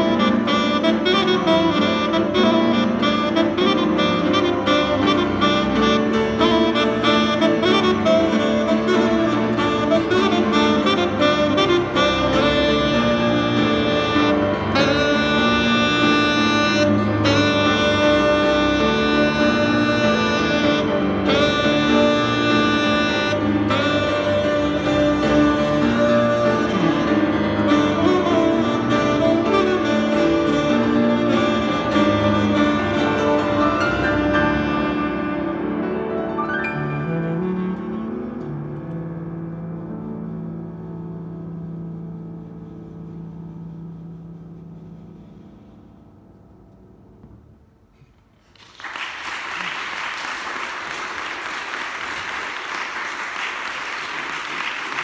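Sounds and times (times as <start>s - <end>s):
tenor saxophone melody: 0.0s - 48.0s
jazz piano: 0.0s - 48.6s.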